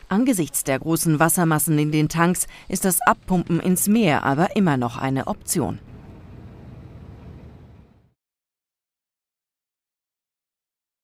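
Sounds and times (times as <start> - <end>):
low rumble of harbour ambience: 0.0 - 8.2.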